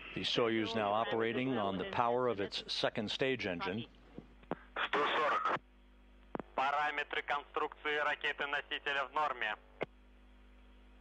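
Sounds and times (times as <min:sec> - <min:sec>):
low steady hum: 0:00.0 - 0:11.0
person speaking over radio: 0:04.8 - 0:05.6.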